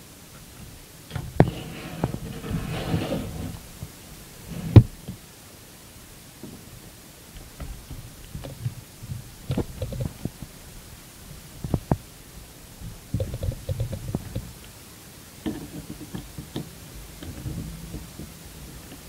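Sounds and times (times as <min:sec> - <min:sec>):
screwdriver scraping and rustling: 0:01.4 - 0:03.8.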